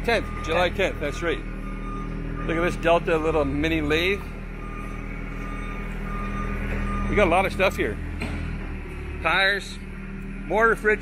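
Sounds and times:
high electronic beep: 0:00.1 - 0:07.8.

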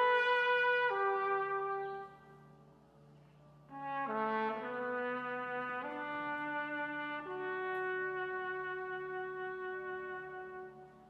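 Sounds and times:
trumpet playing sustained notes: 0:00.0 - 0:02.6, 0:03.7 - 0:11.0.

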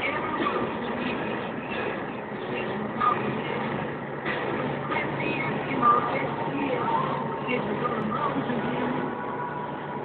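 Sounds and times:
vehicle engine and tyre noise: 0:00.0 - 0:10.0.

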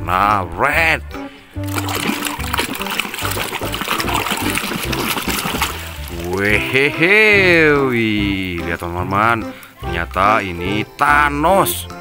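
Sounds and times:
background music: 0:00.0 - 0:12.0
water splashing in a tub: 0:01.6 - 0:07.1.

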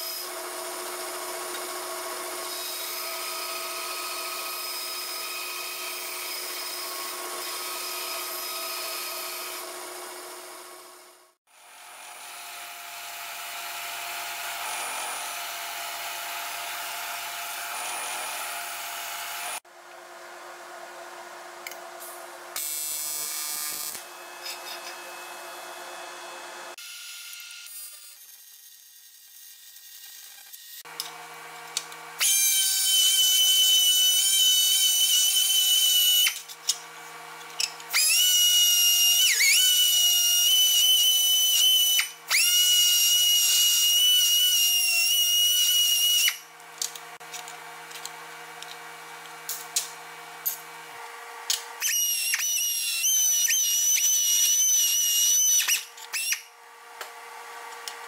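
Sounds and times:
die grinder whining on metal: 0:00.0 - 0:19.6, 0:22.6 - 0:58.0.

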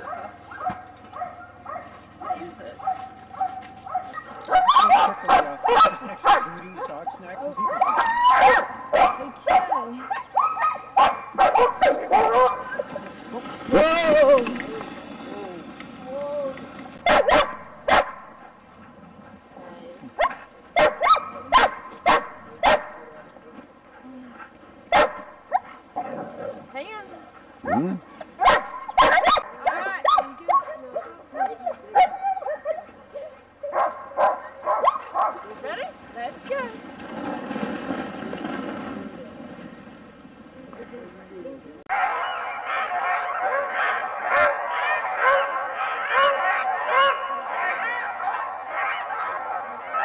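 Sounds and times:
sled dogs barking: 0:00.0 - 0:14.9, 0:16.9 - 0:19.4, 0:20.2 - 0:35.9, 0:41.9 - 0:50.0
dogs yipping and whining: 0:03.3 - 0:13.1, 0:20.2 - 0:35.6, 0:41.9 - 0:50.0.

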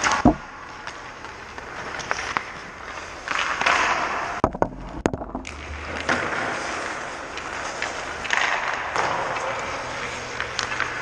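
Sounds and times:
puck knocking camera: 0:00.0 - 0:00.5, 0:04.4 - 0:05.5
skate blades scraping ice: 0:00.0 - 0:04.4, 0:05.5 - 0:11.0.

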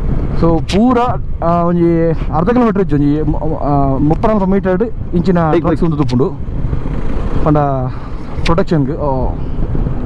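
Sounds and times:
wind and motorcycle road noise: 0:00.0 - 0:10.0
man talking: 0:00.4 - 0:06.4, 0:07.4 - 0:09.4.

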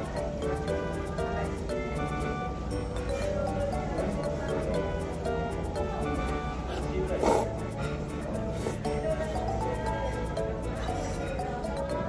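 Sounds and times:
background music: 0:00.0 - 0:12.0
noodles slurped: 0:07.1 - 0:07.6.

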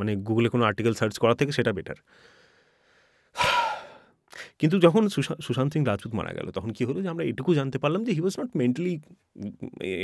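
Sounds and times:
man talking: 0:00.0 - 0:02.0, 0:04.3 - 0:10.0
man breathing into microphone: 0:02.1 - 0:04.5.

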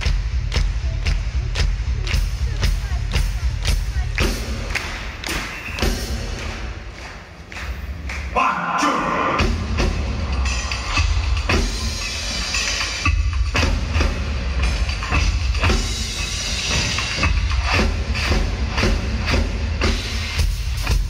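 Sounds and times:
heavy bass beat with drum hits: 0:00.0 - 0:06.4, 0:08.9 - 0:21.0
live band music over pa: 0:00.0 - 0:21.0.

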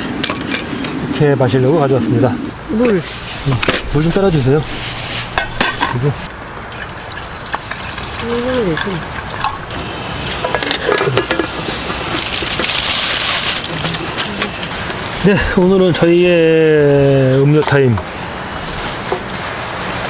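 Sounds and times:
water pouring: 0:06.6 - 0:13.9
gas stove hissing: 0:09.7 - 0:15.6.

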